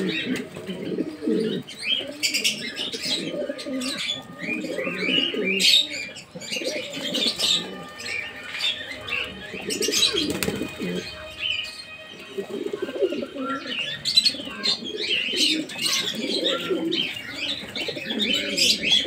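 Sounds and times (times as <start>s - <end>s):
pigeons cooing: 0.0s - 19.0s.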